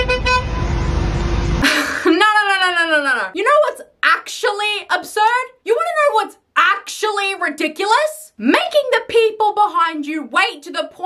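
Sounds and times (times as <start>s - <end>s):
car horn honking: 0.0s - 1.1s.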